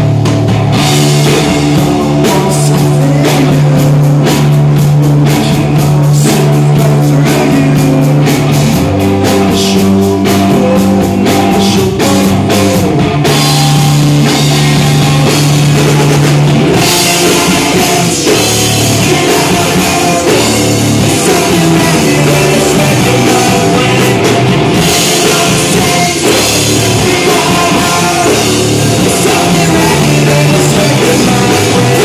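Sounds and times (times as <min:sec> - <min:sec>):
live rock band with vocals: 0:00.0 - 0:32.0.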